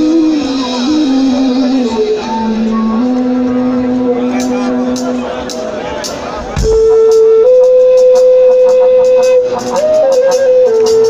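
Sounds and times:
live band held low note: 0.0s - 11.0s.

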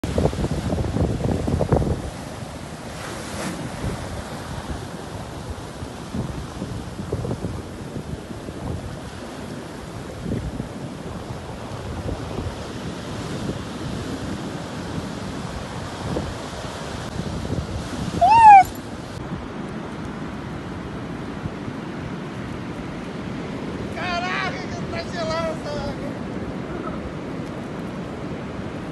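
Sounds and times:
wind on microphone: 0.0s - 19.6s
surf breaking and washing: 0.0s - 28.9s
short high-pitched cry: 18.2s - 18.8s.

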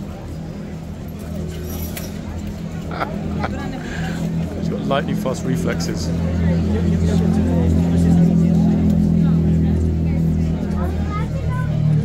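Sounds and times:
bystanders chattering: 0.0s - 12.0s
low traffic engine hum: 0.0s - 12.0s.

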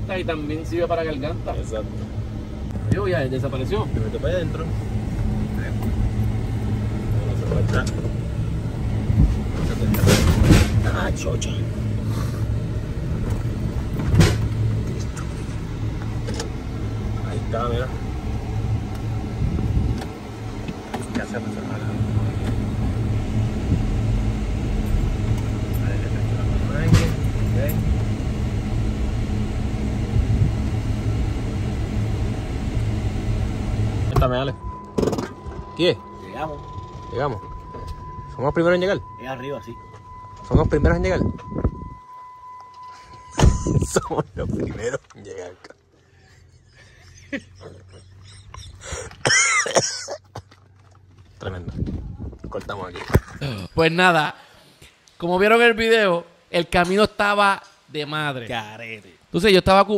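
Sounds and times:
car engine and road hum: 0.0s - 54.2s
low thump over bump: 8.9s - 11.0s.

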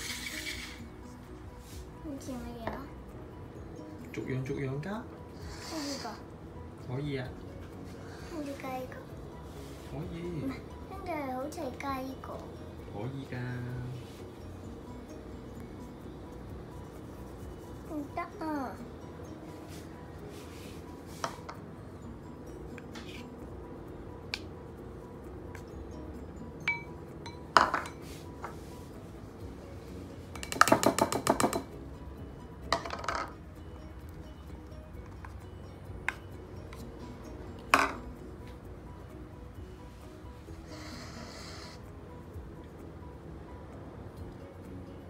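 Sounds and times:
short hiss: 0.0s - 0.8s
background music: 0.0s - 45.0s
ceramic bowls clinking on table: 26.7s - 28.6s, 30.4s - 31.7s, 32.7s - 33.4s, 37.7s - 38.1s.

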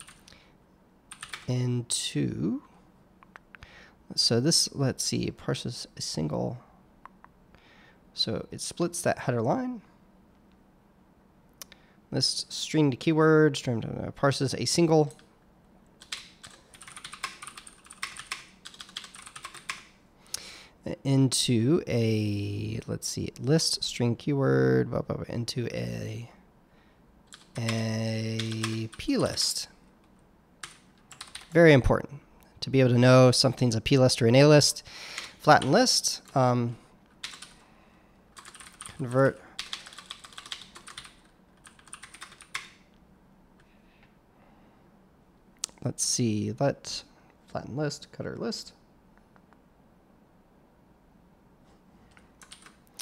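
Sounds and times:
computer keyboard typing: 0.0s - 0.4s, 1.1s - 1.5s, 16.0s - 19.9s, 27.3s - 29.2s, 30.6s - 31.6s, 37.1s - 37.6s, 38.3s - 42.8s, 52.1s - 52.8s.

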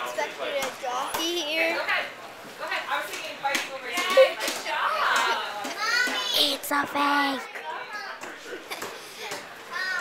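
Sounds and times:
child's voice: 5.7s - 7.6s, 9.7s - 10.0s.

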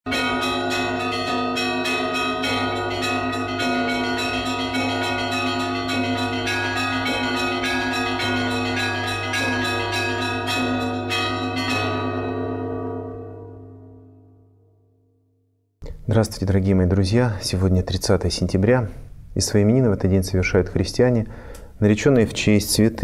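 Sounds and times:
church bells pealing: 0.1s - 14.6s.

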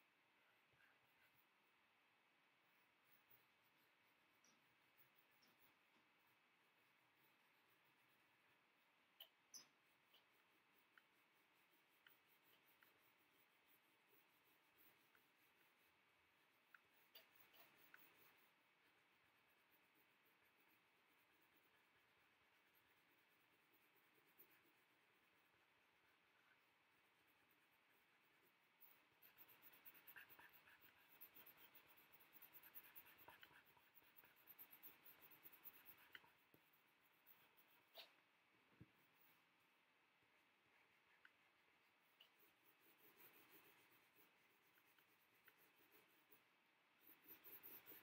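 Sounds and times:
pencil scratching on paper: 0.2s - 48.0s.

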